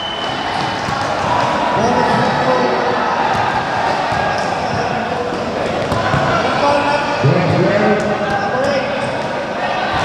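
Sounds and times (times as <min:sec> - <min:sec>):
crowd chatter: 0:00.0 - 0:10.0
basketballs bouncing on hard floor: 0:00.5 - 0:01.5, 0:03.2 - 0:09.4.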